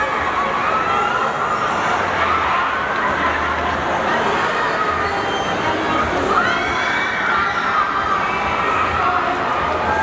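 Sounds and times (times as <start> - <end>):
crowd screaming and cheering: 0.0 - 10.0.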